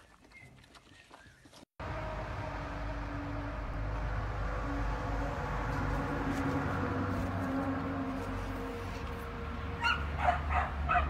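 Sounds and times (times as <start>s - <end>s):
dog barking: 9.8s - 11.0s.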